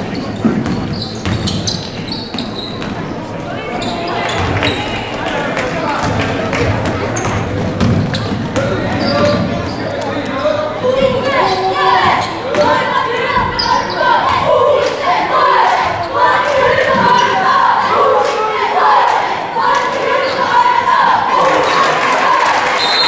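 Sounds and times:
spectators' voices and shouts: 0.0 - 23.0.

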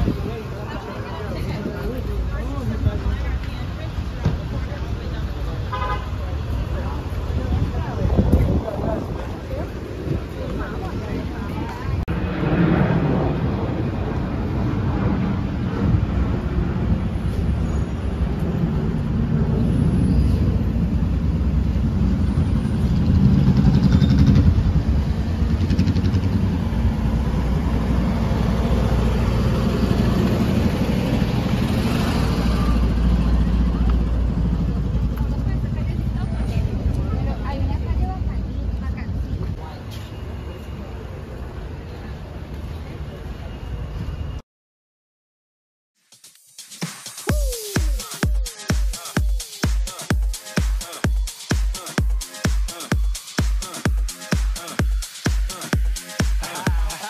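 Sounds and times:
vehicle traffic: 0.0 - 44.4, 46.2 - 57.0
indistinct voices: 47.2 - 57.0.

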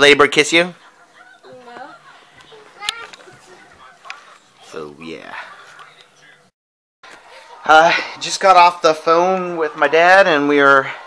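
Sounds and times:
young child vocalizing: 2.5 - 3.6.

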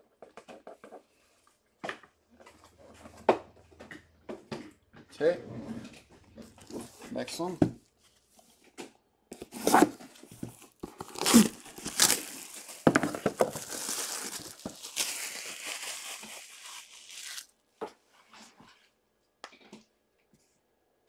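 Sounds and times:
plastic wrap crinkling: 9.6 - 17.5
shrink wrap ripping: 10.8 - 17.5.

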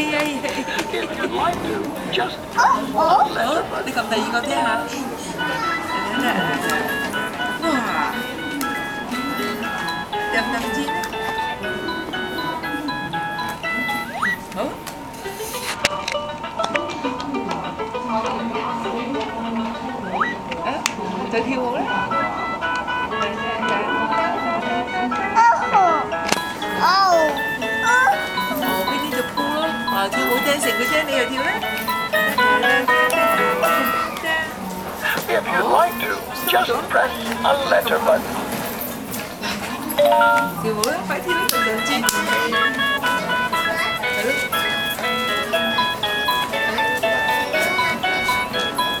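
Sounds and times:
beeping electronic toy tune: 4.2 - 14.7, 19.8 - 20.5, 21.8 - 34.5, 35.3 - 38.2, 40.0 - 49.0.

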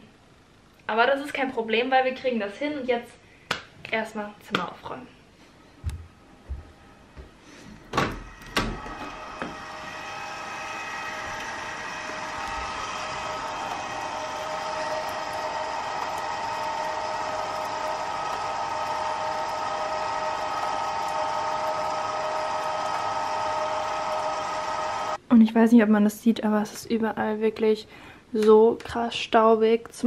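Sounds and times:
steady machine hum: 5.8 - 25.2.

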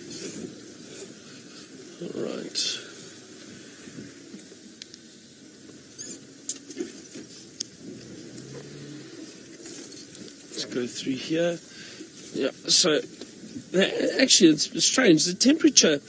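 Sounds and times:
vehicle driving off-road: 5.6 - 13.8.

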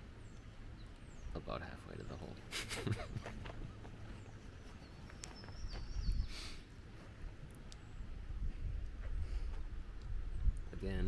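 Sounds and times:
wind rumble on microphone: 2.4 - 11.0.

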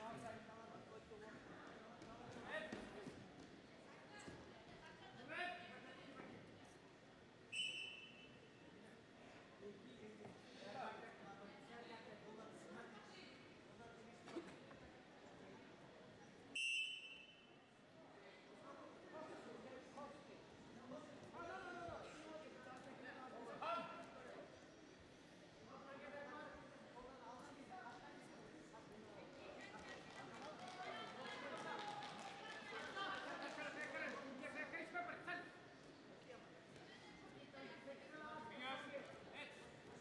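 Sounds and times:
referee's whistle blast: 7.6 - 8.3, 16.6 - 17.5.

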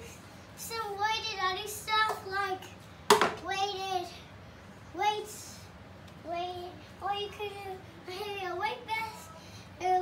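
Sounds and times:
young child's vocal phrases: 4.9 - 10.0.

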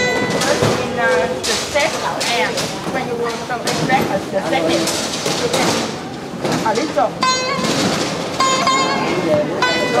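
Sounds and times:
plucked zither notes: 7.2 - 7.8, 8.4 - 10.0.

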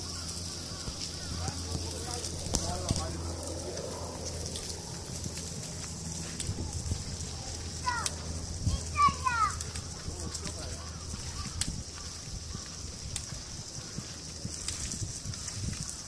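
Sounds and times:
low rumble: 0.0 - 15.9
steady high hiss: 0.0 - 16.0
faint talking: 7.2 - 11.6
child's high-pitched calls: 7.4 - 9.7.

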